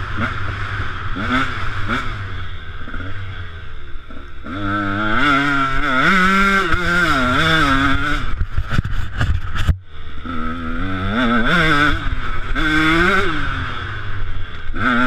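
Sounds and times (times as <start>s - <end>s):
motocross engine revving: 0.0s - 15.0s.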